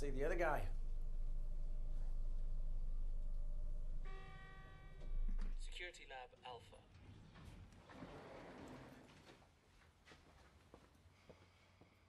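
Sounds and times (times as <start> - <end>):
lift hum: 0.0 - 5.6.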